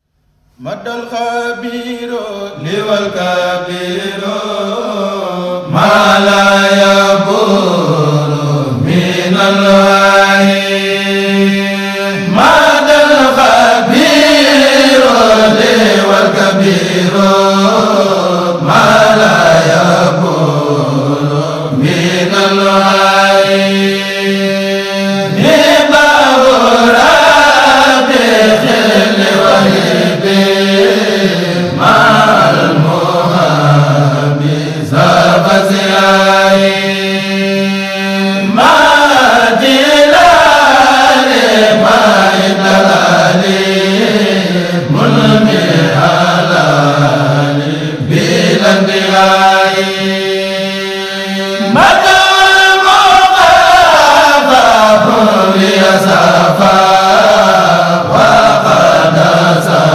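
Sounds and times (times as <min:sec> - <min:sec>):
group of voices chanting: 0:05.7 - 0:59.9.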